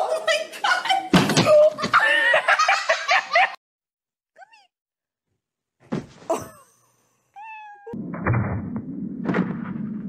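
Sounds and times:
cat meowing: 7.4s - 8.0s
loud thump: 8.0s - 10.0s.

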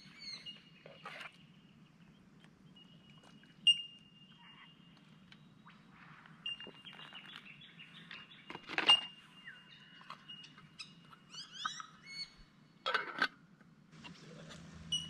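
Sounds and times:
birds calling: 0.0s - 13.2s.

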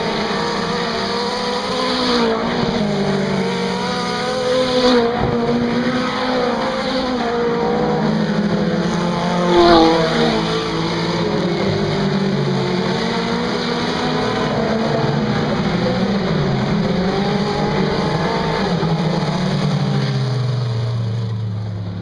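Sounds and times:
race car engines passing: 0.0s - 22.0s.

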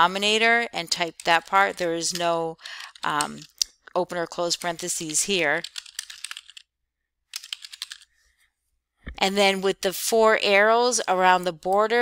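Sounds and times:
typing on a computer keyboard: 5.0s - 6.6s, 7.3s - 8.1s.

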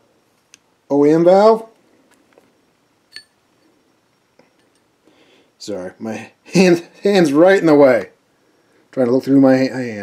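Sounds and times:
light metallic clink with ring: 3.1s - 3.7s.

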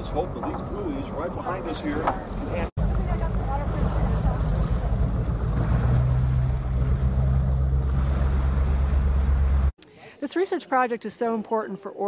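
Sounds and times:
boat engine droning: 0.0s - 9.7s
sea waves washing: 0.0s - 9.7s.

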